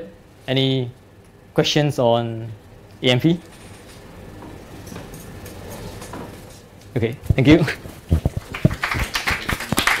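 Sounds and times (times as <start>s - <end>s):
audience applauding: 8.4s - 10.0s.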